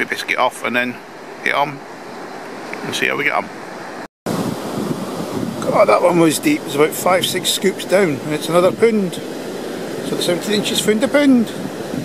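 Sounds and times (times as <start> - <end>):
surf: 0.0 - 12.0
wind buffeting microphone: 4.3 - 12.0.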